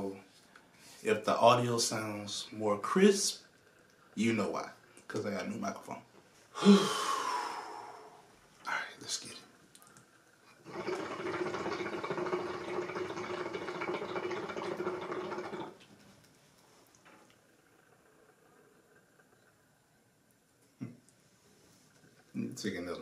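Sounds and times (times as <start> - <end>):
hookah water bubbling: 0.0 - 23.0.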